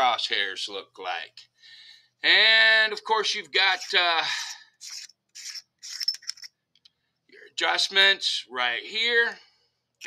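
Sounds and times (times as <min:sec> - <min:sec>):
cap scraping on threads: 0:03.6 - 0:04.1, 0:04.8 - 0:06.5.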